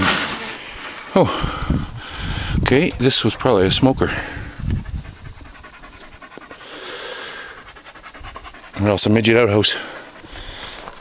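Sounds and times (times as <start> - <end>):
dog panting: 2.0 - 11.0.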